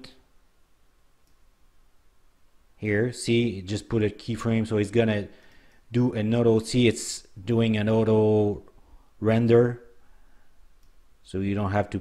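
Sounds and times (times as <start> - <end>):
computer mouse click: 1.2 - 1.4, 10.8 - 11.0.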